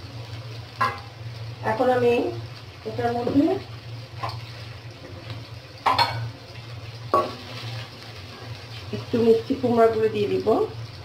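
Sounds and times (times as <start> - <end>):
onions sizzling in oil: 0.0 - 11.0.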